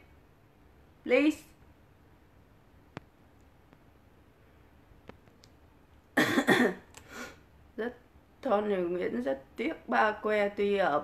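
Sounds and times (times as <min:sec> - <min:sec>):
person coughing: 0:06.2 - 0:06.9.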